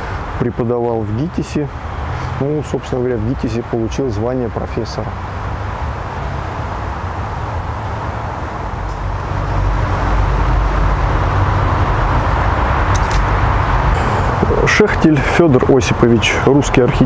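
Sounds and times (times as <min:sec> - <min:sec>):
distant road traffic: 0:00.0 - 0:17.0.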